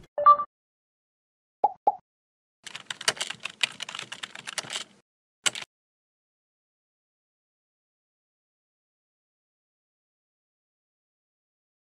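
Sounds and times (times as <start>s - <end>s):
computer keyboard typing: 2.6s - 5.7s.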